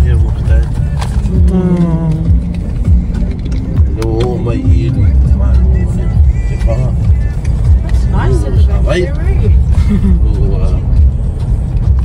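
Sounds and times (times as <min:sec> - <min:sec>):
voices: 0:00.0 - 0:10.9
car cabin road rumble: 0:00.0 - 0:12.0
music: 0:00.0 - 0:12.0.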